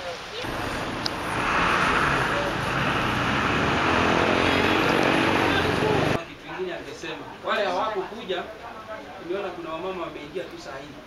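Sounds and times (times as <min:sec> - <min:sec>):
steady rushing noise: 0:00.4 - 0:06.2.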